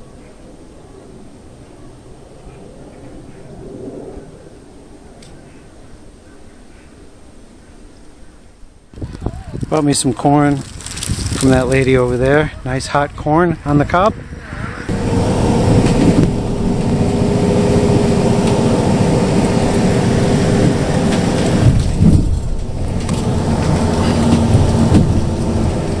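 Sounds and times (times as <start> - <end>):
bus engine and road rumble: 10.4 - 12.4, 13.9 - 26.0.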